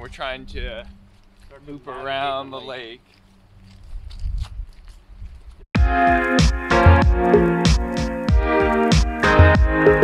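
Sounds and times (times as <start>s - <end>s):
footsteps on road: 0.9s - 8.9s.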